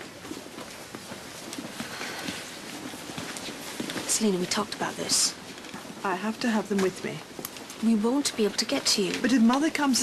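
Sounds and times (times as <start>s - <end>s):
footsteps on hard floor: 0.0s - 4.7s
background hum: 0.0s - 10.0s.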